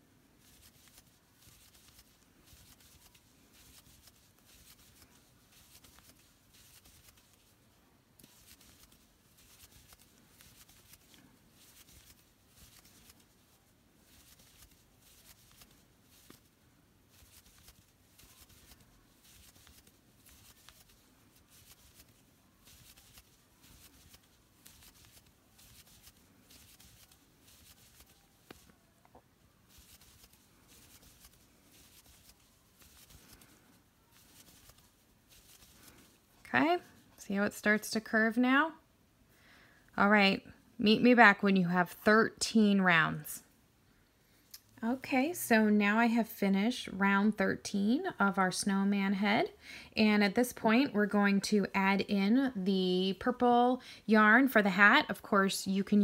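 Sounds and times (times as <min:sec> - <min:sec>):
yarn rustling through crochet stitches: 0:00.0 - 0:38.6.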